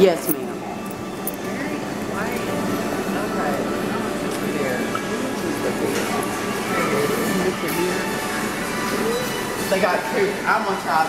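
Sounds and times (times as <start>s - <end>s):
music playing: 0.0s - 11.0s.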